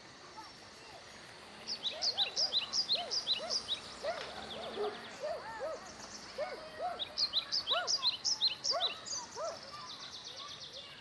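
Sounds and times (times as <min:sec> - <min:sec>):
bird chirping: 0:01.6 - 0:11.0.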